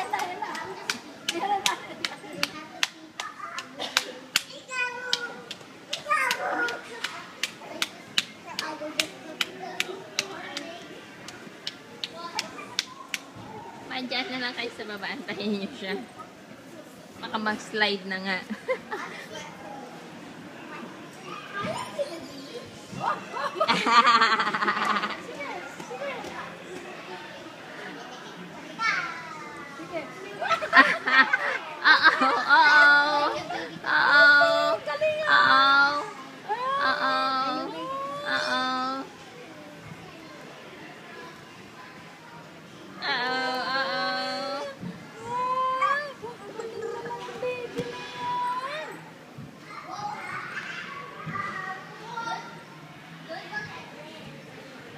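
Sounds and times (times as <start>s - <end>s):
faint voices: 0.0s - 54.9s
sharp hand claps: 0.1s - 13.3s.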